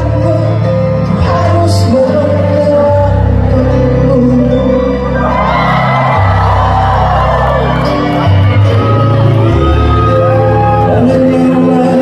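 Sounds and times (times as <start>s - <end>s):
person singing: 0.0s - 6.3s, 7.9s - 12.0s
live band playing: 0.0s - 12.0s
crowd whooping and shouting: 5.0s - 12.0s.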